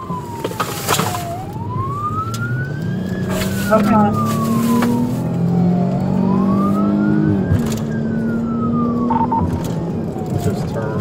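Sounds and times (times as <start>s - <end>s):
police siren wailing: 0.0s - 11.0s
car engine running: 0.1s - 11.0s.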